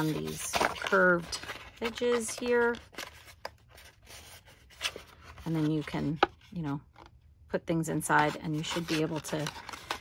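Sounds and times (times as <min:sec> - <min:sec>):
crisp paper crackle: 0:00.0 - 0:06.1, 0:08.3 - 0:10.0
paper rustling and scraping: 0:00.0 - 0:06.7, 0:08.1 - 0:10.0.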